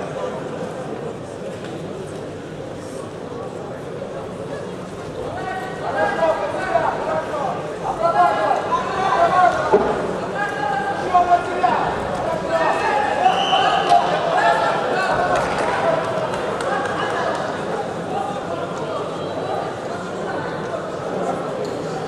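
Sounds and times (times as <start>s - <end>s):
people shouting in a hall: 5.3s - 20.5s.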